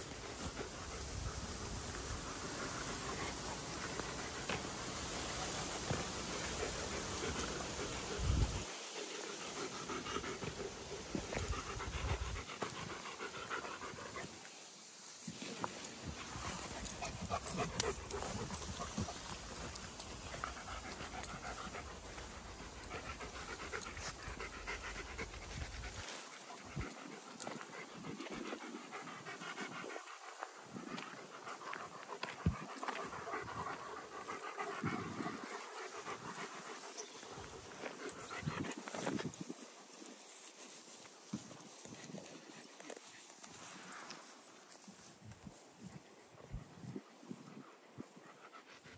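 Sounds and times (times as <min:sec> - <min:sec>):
dog panting: 0:00.0 - 0:14.3, 0:16.0 - 0:39.6.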